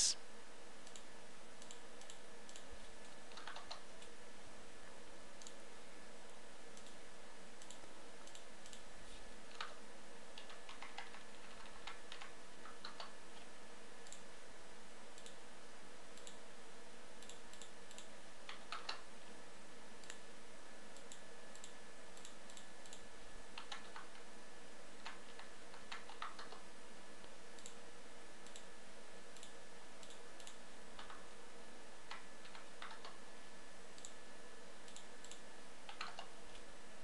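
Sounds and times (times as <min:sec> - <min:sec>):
steady background hiss: 0:00.0 - 0:01.4
mouse clicks: 0:00.8 - 0:04.1, 0:07.6 - 0:08.8, 0:16.2 - 0:16.4, 0:17.2 - 0:19.0, 0:21.0 - 0:23.0, 0:23.6 - 0:24.2, 0:25.0 - 0:26.6, 0:27.6 - 0:27.8, 0:28.4 - 0:28.7, 0:29.4 - 0:31.3, 0:32.1 - 0:33.2, 0:34.0 - 0:34.2, 0:34.9 - 0:36.7
keyboard keystrokes: 0:03.3 - 0:03.8, 0:10.4 - 0:13.1, 0:23.6 - 0:24.2, 0:25.0 - 0:26.6, 0:32.1 - 0:33.2, 0:34.9 - 0:36.3.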